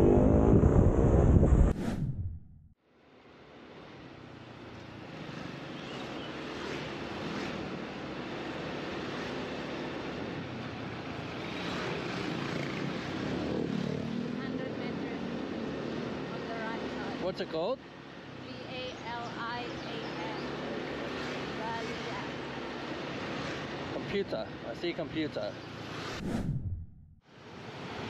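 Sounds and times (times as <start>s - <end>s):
scooter engine drone: 0.0s - 1.4s
road and wind noise: 0.0s - 28.0s.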